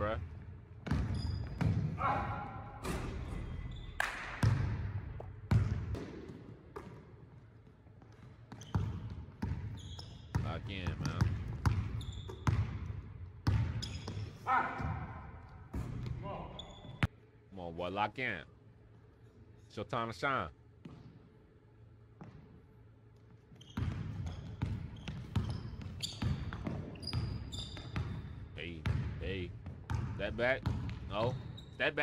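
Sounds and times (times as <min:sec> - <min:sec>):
basketball bouncing on hardwood: 0:00.8 - 0:01.9, 0:04.4 - 0:07.0, 0:10.3 - 0:14.2.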